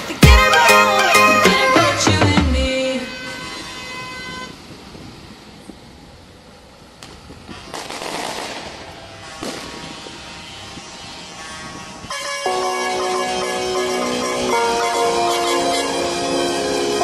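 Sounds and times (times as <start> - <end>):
music: 0.0 - 3.0, 12.3 - 17.0.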